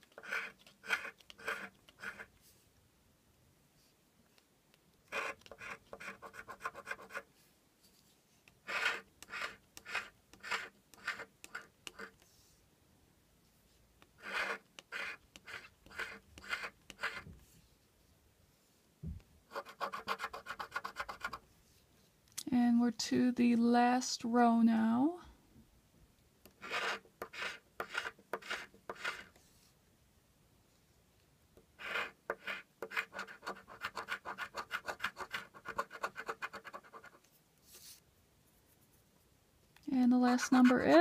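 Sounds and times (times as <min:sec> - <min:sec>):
lottery ticket being scratched: 0:00.0 - 0:02.3, 0:08.6 - 0:12.1, 0:14.2 - 0:17.2, 0:26.6 - 0:29.3, 0:31.8 - 0:37.2, 0:40.2 - 0:41.0.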